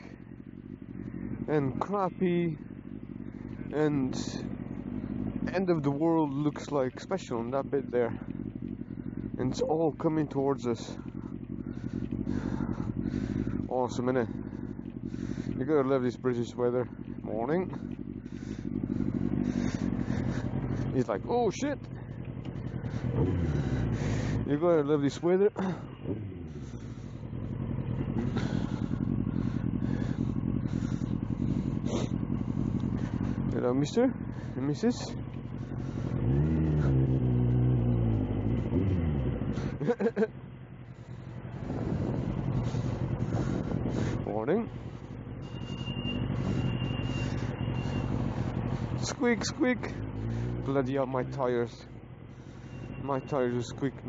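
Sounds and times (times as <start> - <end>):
motorcycle engine running: 0.0 - 54.0
road and wind noise: 0.0 - 54.0
bicycle brakes squealing: 45.4 - 48.3.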